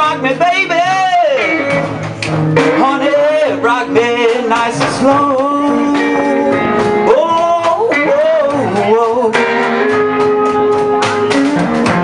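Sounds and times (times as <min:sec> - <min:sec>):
blues band playing: 0:00.0 - 0:12.0
electric guitar lead line bending: 0:00.0 - 0:12.0.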